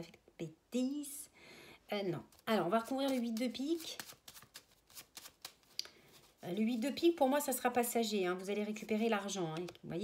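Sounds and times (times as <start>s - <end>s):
playing cards shuffling: 2.3s - 6.4s.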